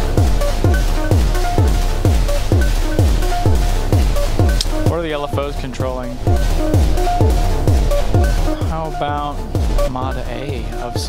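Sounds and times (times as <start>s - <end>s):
kick drum with pitch sweep: 0.0s - 11.0s
synth blips: 0.6s - 10.3s.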